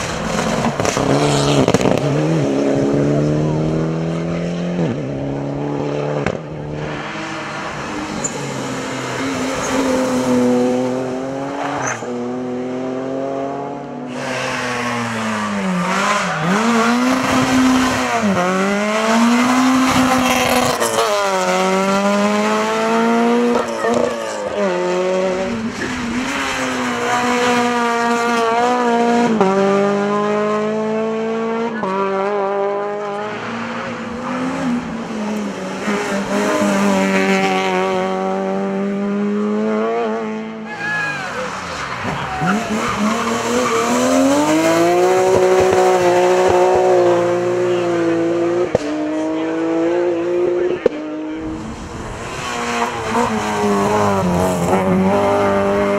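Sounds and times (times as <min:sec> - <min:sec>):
rally car engines at full throttle: 0:00.0 - 0:55.9.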